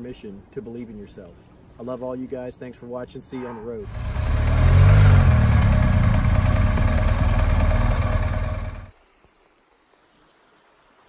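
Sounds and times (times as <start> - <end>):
vehicle engine running: 3.8 - 8.9.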